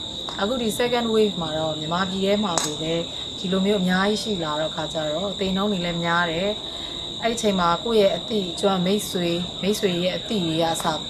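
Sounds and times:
crickets chirping drone: 0:00.0 - 0:11.0
woman speaking: 0:00.4 - 0:11.0.

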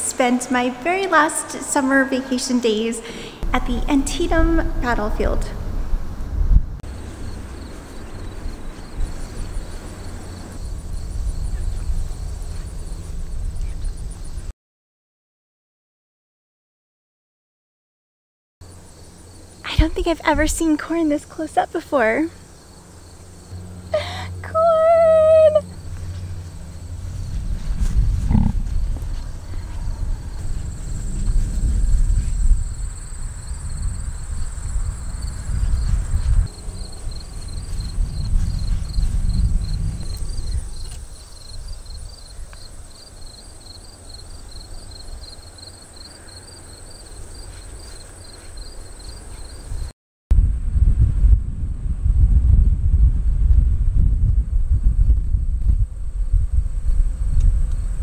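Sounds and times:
wind rumbling on microphone: 0:03.4 - 0:14.5, 0:23.0 - 0:46.3, 0:46.9 - 0:58.0
insect high buzz: 0:06.9 - 0:14.5, 0:18.6 - 0:49.9
insect pulsing trill: 0:06.9 - 0:14.5, 0:22.0 - 0:49.9.

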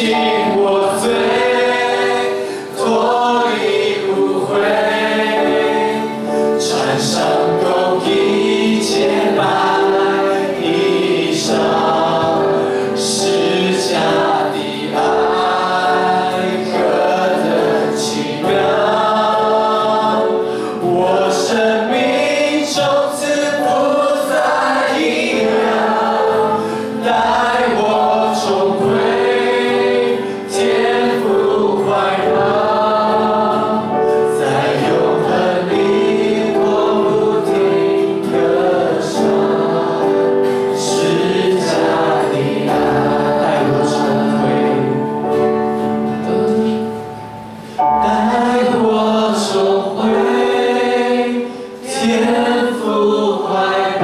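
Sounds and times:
singer on microphone: 0:00.0 - 0:47.0, 0:47.8 - 0:54.0
congregation singing worship song: 0:00.0 - 0:54.0.

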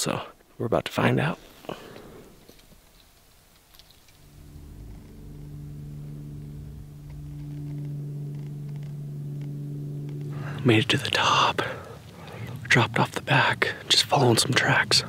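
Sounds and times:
steady low hum: 0:04.0 - 0:15.0.

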